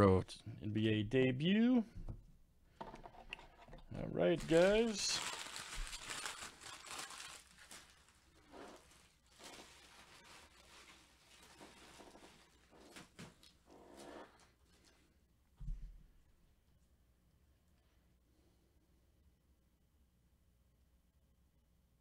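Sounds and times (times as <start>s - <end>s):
foil wrappers crinkling: 4.2s - 13.5s.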